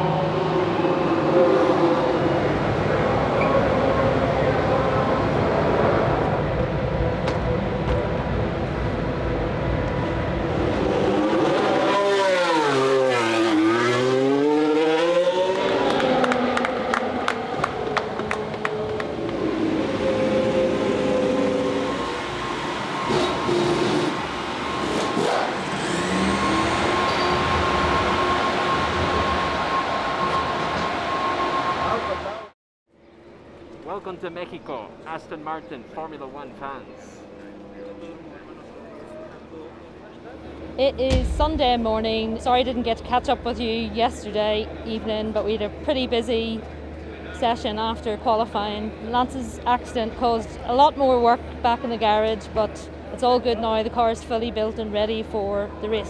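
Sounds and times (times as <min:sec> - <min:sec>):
racing car engines: 0:00.0 - 0:32.6
hand claps: 0:15.5 - 0:19.4.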